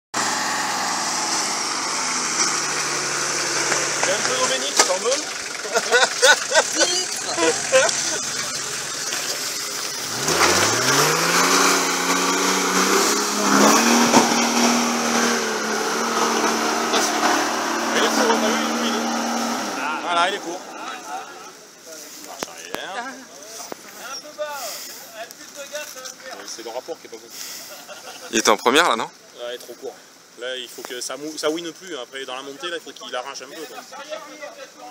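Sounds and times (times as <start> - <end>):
engine running steadily: 0.2 - 22.7
people talking: 4.0 - 9.9, 16.3 - 34.9.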